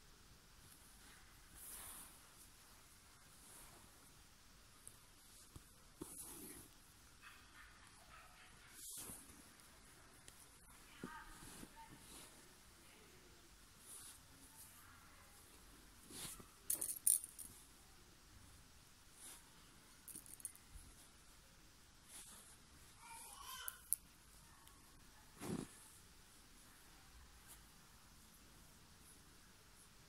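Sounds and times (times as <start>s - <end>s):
needle and thread rustling through fabric: 0.4s - 17.8s, 18.4s - 30.0s
beads clicking together: 16.7s - 17.5s, 20.1s - 20.6s.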